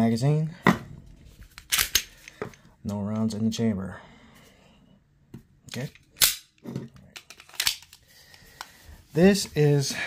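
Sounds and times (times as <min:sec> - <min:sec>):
pistol action snapping: 0:01.6 - 0:02.1, 0:05.8 - 0:06.6, 0:07.2 - 0:07.9.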